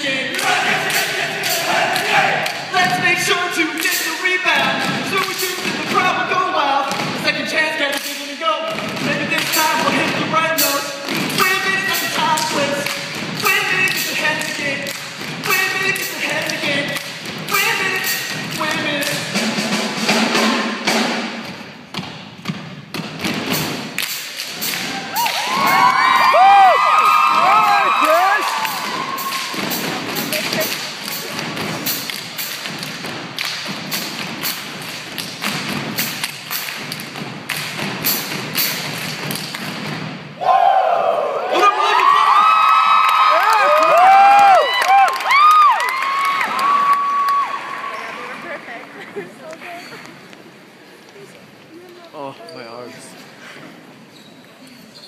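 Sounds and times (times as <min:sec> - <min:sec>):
music: 0:00.0 - 0:03.2, 0:08.0 - 0:26.3, 0:28.6 - 0:40.4
sneaker squeaks: 0:54.0 - 0:55.0.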